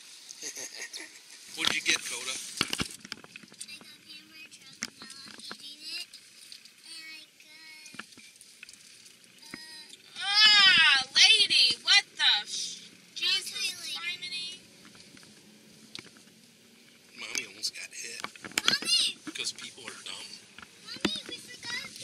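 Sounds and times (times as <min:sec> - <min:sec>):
soft clicks and rustles: 0:14.8 - 0:17.5.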